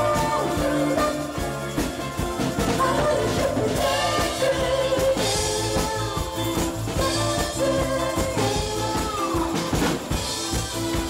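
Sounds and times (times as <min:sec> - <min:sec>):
acoustic guitar: 0:00.0 - 0:11.0
drums keeping steady beat: 0:00.0 - 0:11.0
person singing: 0:00.0 - 0:11.0.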